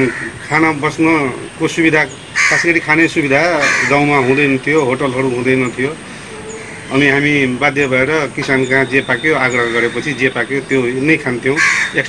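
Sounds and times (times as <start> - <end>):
man talking loudly: 0.0 - 6.0, 6.9 - 12.0.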